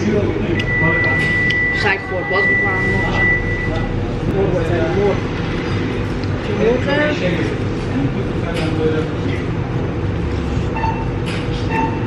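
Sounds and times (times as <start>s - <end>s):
distant voices: 0.0s - 12.0s
steady low hum: 0.0s - 12.0s
high electronic beep: 0.6s - 3.9s, 10.8s - 12.0s.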